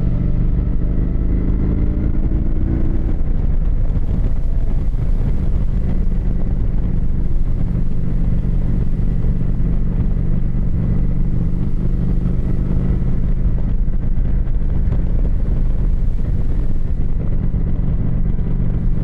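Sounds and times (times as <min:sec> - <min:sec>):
motorcycle engine cruising: 0:00.0 - 0:19.0.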